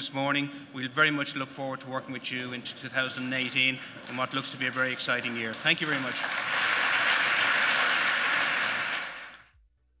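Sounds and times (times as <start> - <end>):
audience applauding: 4.0 - 9.5.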